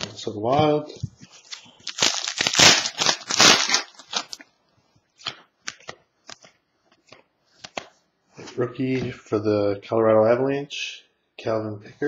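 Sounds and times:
foil wrapper rustling and tearing: 1.4s - 4.4s.

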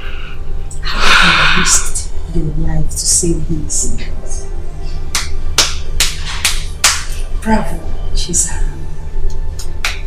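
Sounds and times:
background film music: 0.0s - 10.0s
slow hand clapping: 5.1s - 7.2s, 9.6s - 10.0s.

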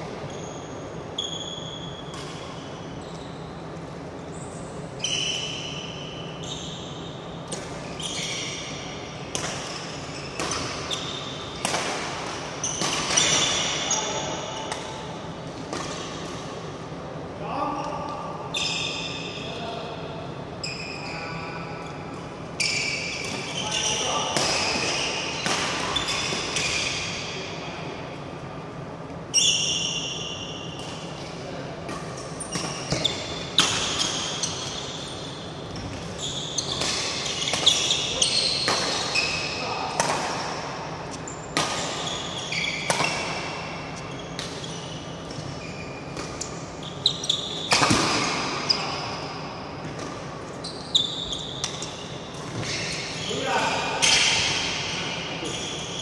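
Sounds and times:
shoes squeaking on court: 0.3s - 11.7s, 22.6s - 27.4s, 32.3s - 39.9s, 41.1s - 56.0s.

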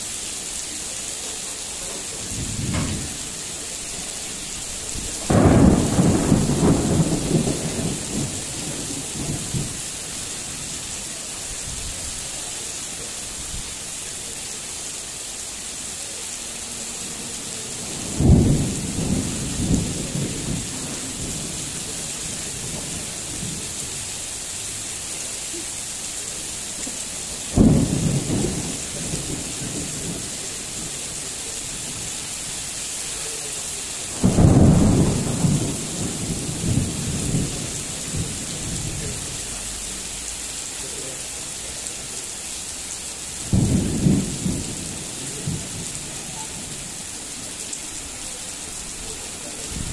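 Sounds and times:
heavy rain: 0.0s - 49.9s
thunder claps: 2.2s - 3.4s, 4.8s - 9.8s, 18.0s - 21.8s, 27.5s - 30.5s, 34.1s - 39.2s.

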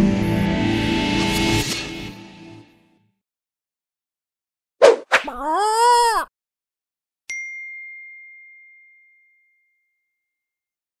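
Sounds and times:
bright bell ding: 7.3s - 9.9s.

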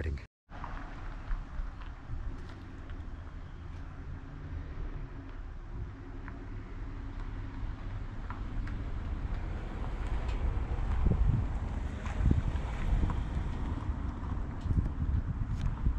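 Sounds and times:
wind buffeting microphone: 5.0s - 15.9s.

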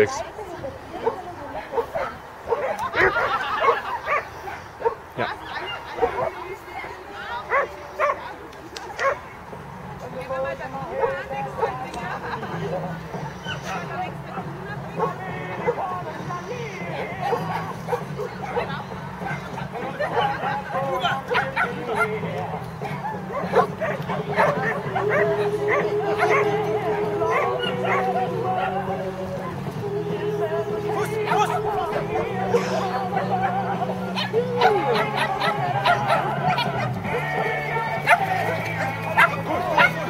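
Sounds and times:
dog barking: 1.0s - 6.4s, 7.5s - 8.3s, 9.0s - 9.2s, 17.2s - 22.2s, 23.0s - 26.6s, 27.2s - 28.8s, 34.2s - 36.9s, 37.8s - 40.0s.

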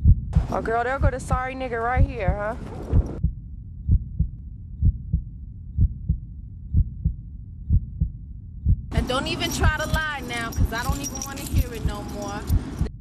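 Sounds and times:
muffled heartbeat thumps: 0.0s - 9.0s, 9.6s - 13.0s.

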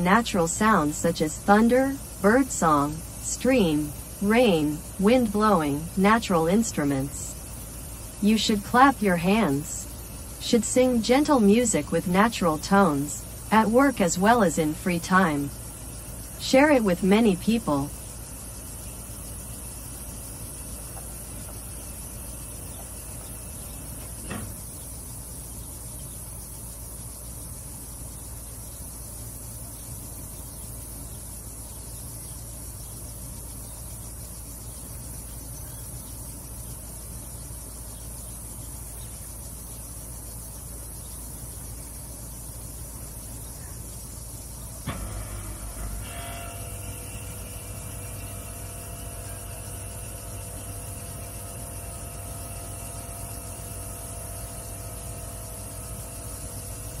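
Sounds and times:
low rumble with hiss: 0.0s - 57.0s
steady multi-pitched hum: 0.0s - 57.0s.

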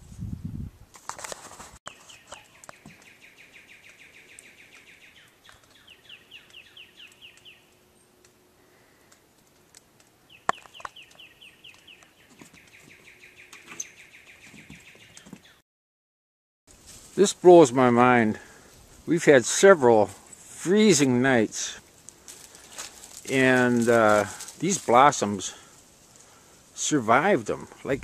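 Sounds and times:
songbird whistling: 2.0s - 7.7s.

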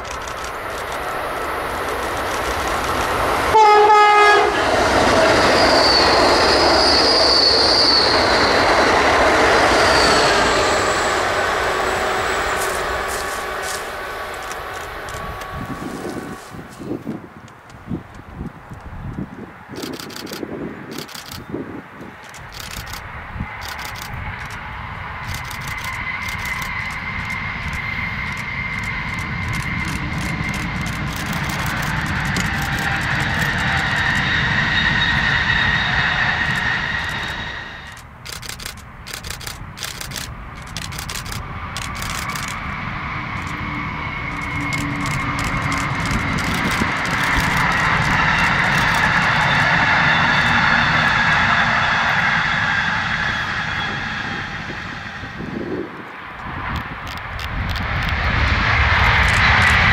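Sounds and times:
electric train passing with whine: 0.0s - 59.9s.

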